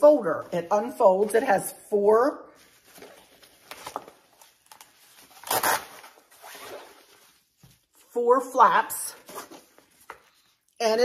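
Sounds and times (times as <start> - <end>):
nylon fabric rustling: 2.5 - 10.6
velcro tearing rasp: 4.7 - 7.1.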